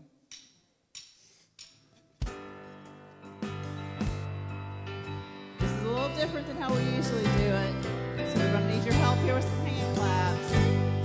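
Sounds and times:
drumstick count-in ticks: 0.2s - 2.4s.

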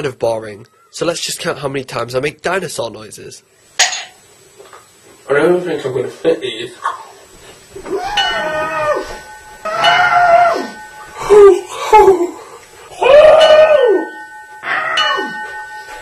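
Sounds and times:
man making screeching cries: 7.8s - 15.4s.

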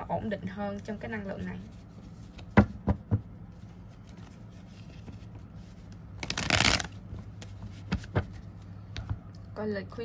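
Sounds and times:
low steady hum: 0.0s - 10.0s
cards being shuffled: 3.9s - 8.6s.

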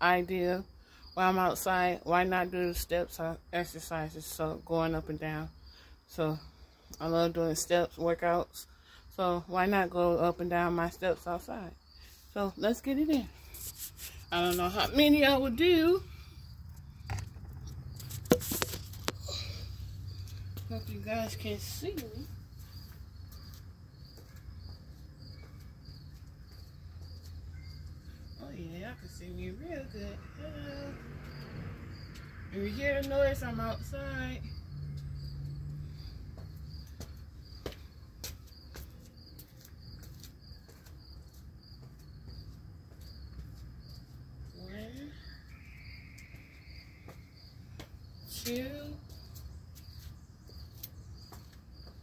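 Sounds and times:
crickets chirping: 0.0s - 52.0s
footsteps on concrete steps: 20.2s - 28.3s, 35.8s - 45.2s, 46.2s - 52.0s.

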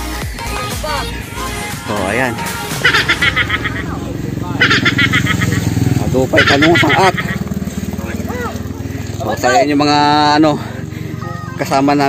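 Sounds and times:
motorcycle engine passing by: 0.8s - 12.0s.

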